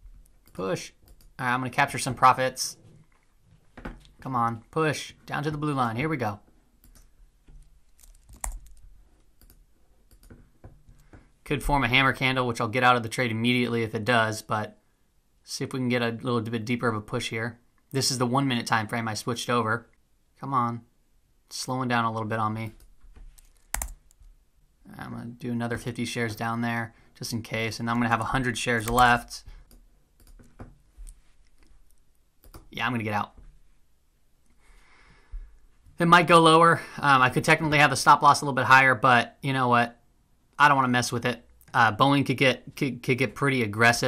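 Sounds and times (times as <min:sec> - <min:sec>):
computer keyboard key clicks: 0:08.0 - 0:08.8, 0:23.4 - 0:24.0.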